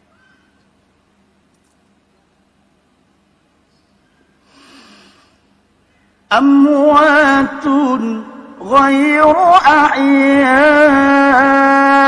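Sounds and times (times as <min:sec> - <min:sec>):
faint steady hum: 0:00.0 - 0:12.0
man breathing in: 0:04.4 - 0:05.5.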